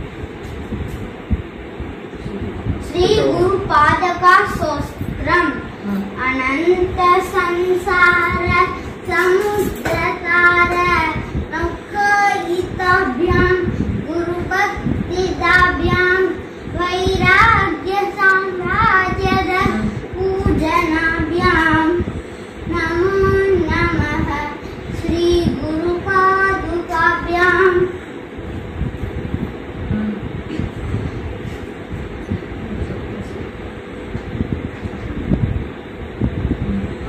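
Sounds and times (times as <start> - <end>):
steady hum: 0.0 - 37.0
child chanting verses: 2.8 - 22.1.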